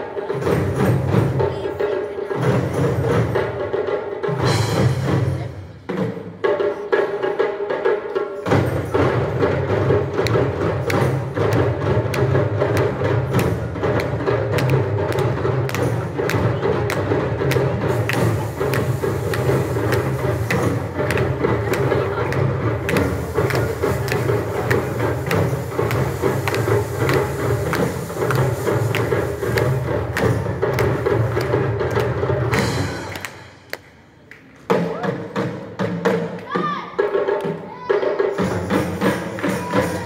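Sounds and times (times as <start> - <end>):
drum ensemble playing: 0.0 - 40.0.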